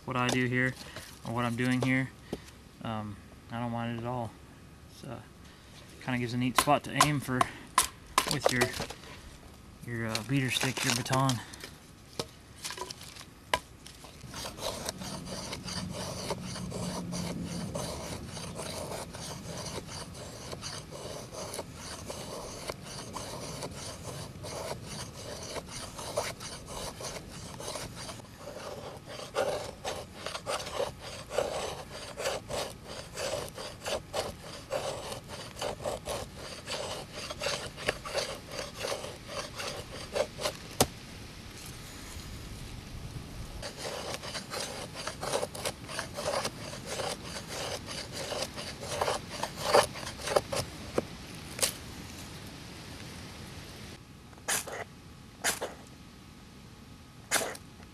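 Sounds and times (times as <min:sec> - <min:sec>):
knife scraping plant fibre and wood: 0:00.1 - 0:02.4, 0:06.2 - 0:09.2, 0:10.0 - 0:40.9, 0:43.6 - 0:51.8, 0:54.5 - 0:55.8, 0:57.3 - 0:57.6.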